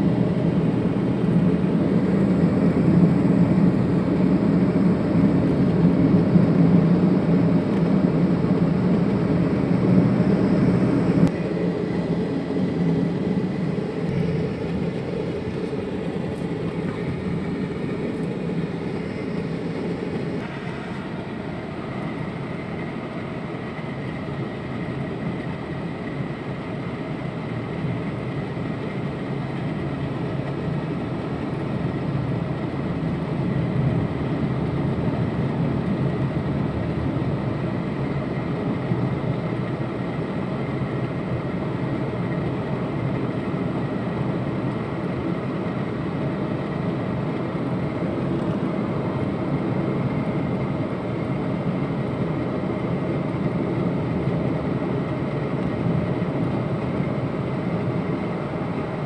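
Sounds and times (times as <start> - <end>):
car engine and tyre noise: 0.0 - 59.0.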